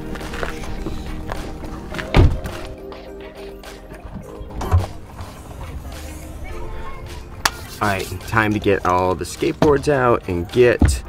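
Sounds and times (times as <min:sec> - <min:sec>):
background music: 0:00.0 - 0:11.0
car hatch unlatching clunk: 0:04.0 - 0:06.2.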